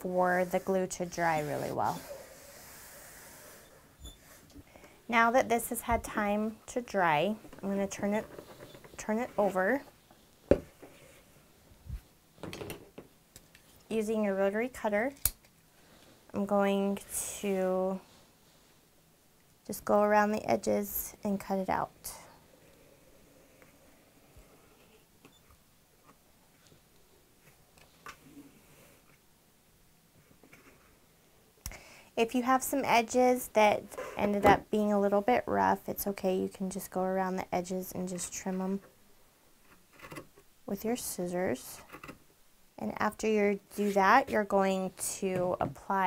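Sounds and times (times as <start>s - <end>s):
faint room tone hiss: 0.0s - 46.0s.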